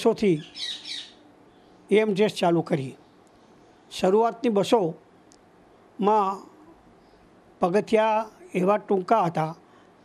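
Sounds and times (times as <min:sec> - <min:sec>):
man speaking: 0:00.0 - 0:00.5, 0:01.9 - 0:03.0, 0:03.9 - 0:05.0, 0:06.0 - 0:06.6, 0:07.6 - 0:09.6.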